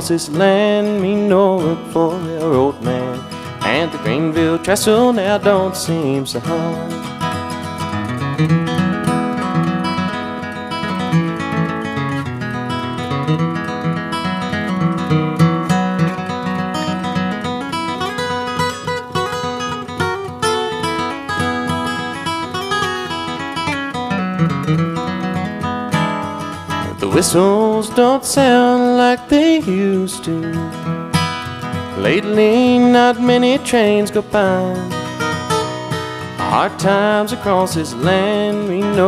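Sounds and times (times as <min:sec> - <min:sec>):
acoustic guitar picking and strumming: 0:00.0 - 0:39.0.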